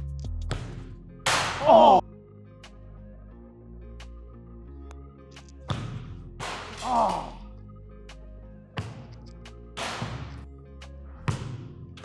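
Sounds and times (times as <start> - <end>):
background music: 0.0 - 12.0
football being kicked: 5.7 - 6.8, 8.8 - 9.1, 11.3 - 11.8.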